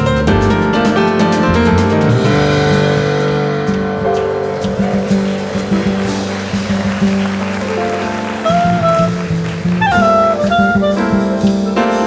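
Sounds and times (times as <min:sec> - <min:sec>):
double bass walking low notes: 0:00.0 - 0:12.0
drum kit with cymbals: 0:00.0 - 0:12.0
piano: 0:00.0 - 0:12.0.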